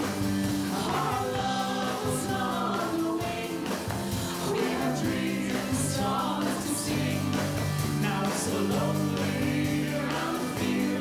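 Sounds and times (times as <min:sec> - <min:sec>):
rock band playing live: 0:00.0 - 0:11.0
voices singing in harmony: 0:00.0 - 0:11.0.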